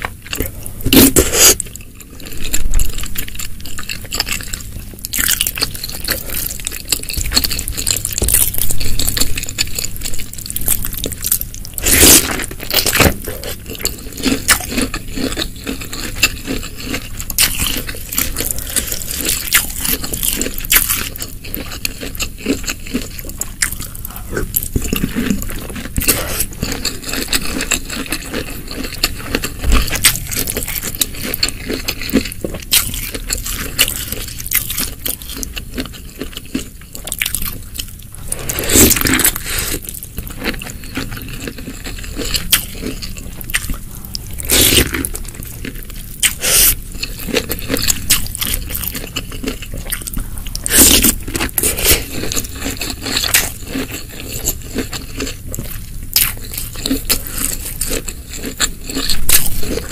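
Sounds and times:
crunchy bites and wet chewing: 0.0 - 59.9.

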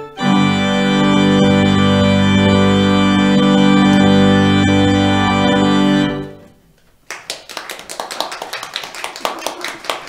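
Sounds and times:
congregation clapping: 7.0 - 10.0.

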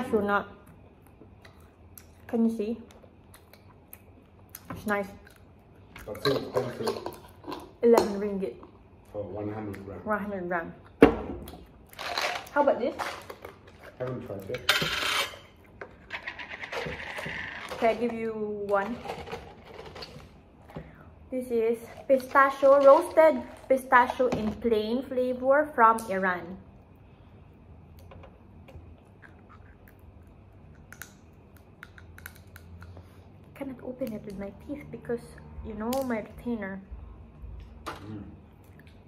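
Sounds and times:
pistachio shells cracking: 30.7 - 33.0.

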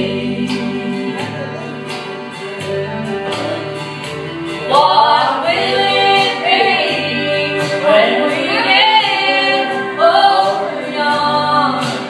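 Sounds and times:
women singing gospel in harmony: 0.0 - 1.4, 4.6 - 12.0.

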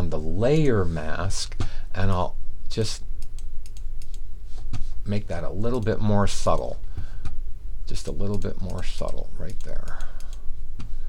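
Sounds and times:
steady low hum: 0.0 - 11.0
keyboard and mouse clicking: 3.2 - 4.2, 8.2 - 10.4.

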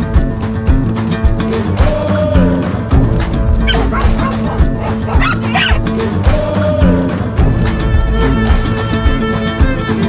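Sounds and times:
background music: 0.0 - 10.0
dog yipping: 3.6 - 5.8.

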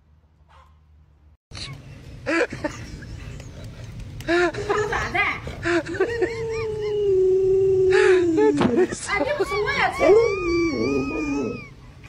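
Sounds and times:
dog howling: 6.3 - 11.8.

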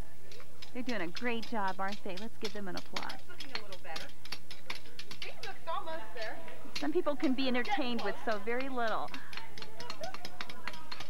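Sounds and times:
hammers tapping steel rods: 0.3 - 5.8, 6.7 - 11.0.

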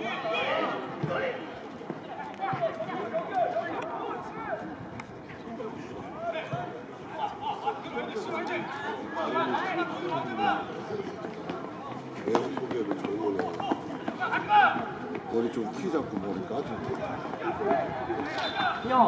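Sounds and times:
people calling and shouting: 0.0 - 19.0.

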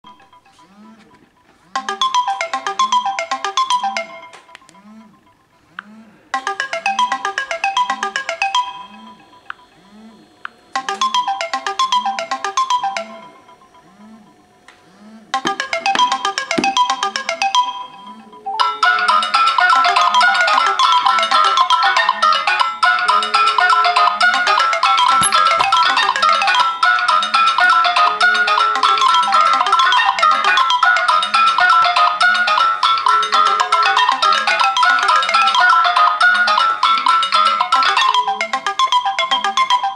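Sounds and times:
phone ring melody: 0.0 - 5.7, 6.3 - 14.7, 15.4 - 39.9.

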